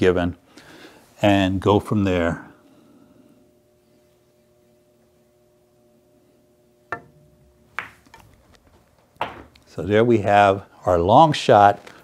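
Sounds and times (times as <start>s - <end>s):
faint steady hum: 0.0s - 12.0s
cue tip clicking on ball: 6.9s - 7.2s, 7.8s - 8.4s
ball knocking into pocket: 6.9s - 8.2s, 9.2s - 9.5s
pool balls clicking: 6.9s - 9.7s.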